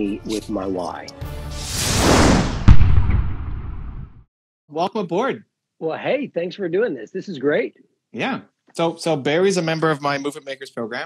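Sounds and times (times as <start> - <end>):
loud whoosh: 1.6 - 4.2
deep boom hit: 1.9 - 4.2.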